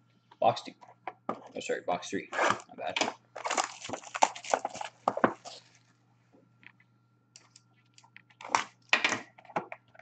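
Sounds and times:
wrapping torn and crinkled: 3.4s - 5.9s.

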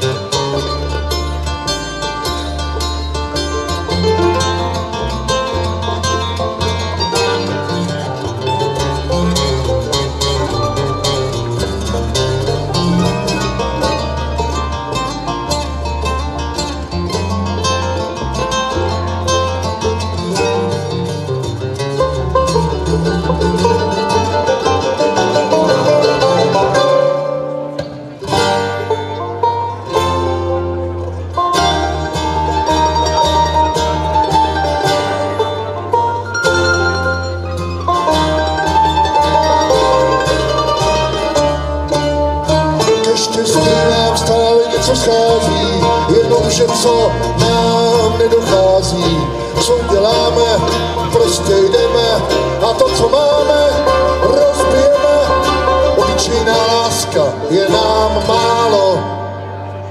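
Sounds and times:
acoustic guitars: 0.0s - 59.9s
banjo picking: 0.0s - 59.9s
upright bass: 0.0s - 59.9s.

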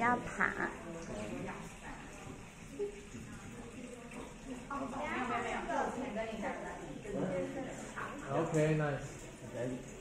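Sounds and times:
faint indistinct voices: 0.6s - 10.0s.

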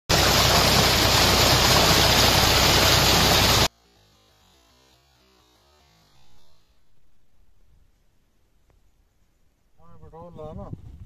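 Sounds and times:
water gushing into tank: 0.1s - 3.7s.

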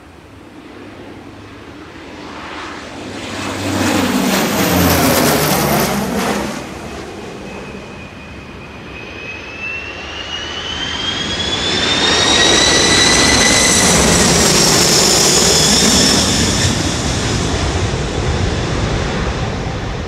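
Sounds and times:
high engine whine: 0.0s - 20.0s
jet engines roaring overhead: 0.0s - 20.0s.

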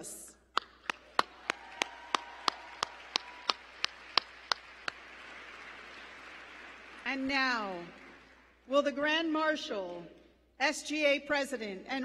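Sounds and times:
hand claps close up: 0.6s - 7.0s
audience applause: 0.8s - 8.5s.

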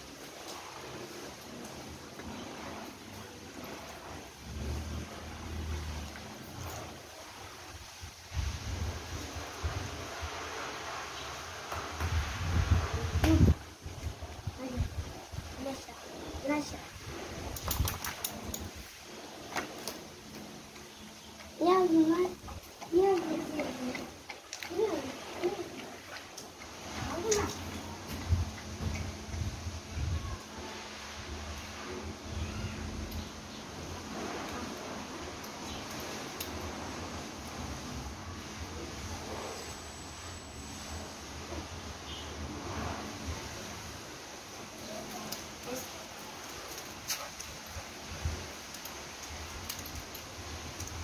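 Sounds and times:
wind rumbling on microphone: 0.8s - 20.3s, 21.6s - 39.8s.

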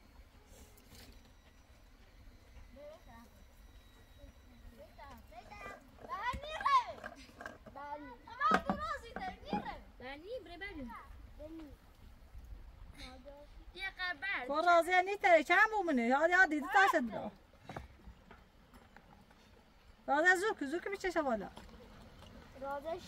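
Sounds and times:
children calling out and chattering: 2.8s - 11.9s.

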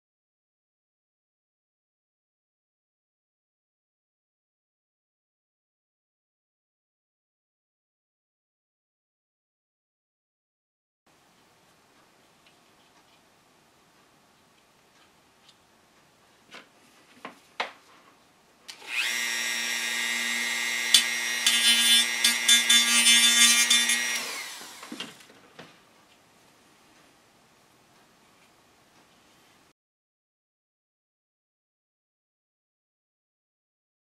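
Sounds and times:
rotary tool whining: 18.7s - 25.3s
rotary tool grinding wood: 18.8s - 25.2s.

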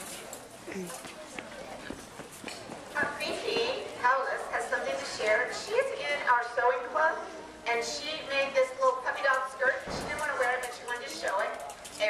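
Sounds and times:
faint chatter of voices: 0.0s - 12.0s.

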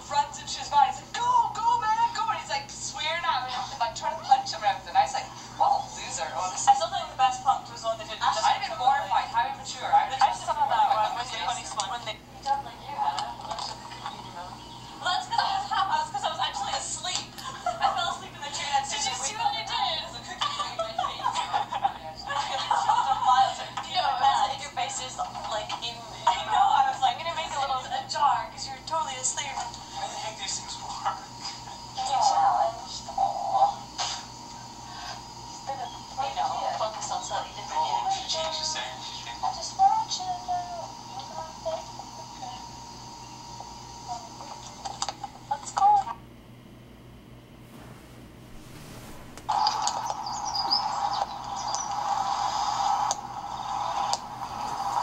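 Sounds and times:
voices talking: 0.0s - 46.2s, 49.5s - 53.9s
steady noise: 47.5s - 55.0s
birds chirping: 49.5s - 52.4s.

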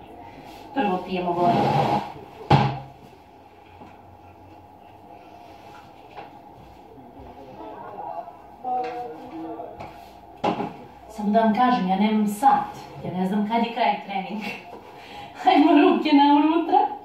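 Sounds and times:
faint voices: 0.0s - 15.6s.

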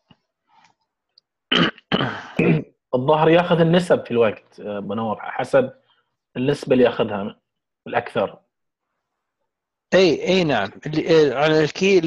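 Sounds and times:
man clearing his throat: 1.5s - 2.8s.

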